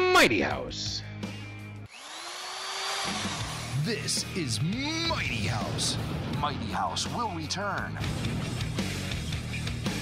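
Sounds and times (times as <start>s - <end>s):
power drill whirring: 1.9s - 3.9s
radio jingle music: 3.7s - 9.0s.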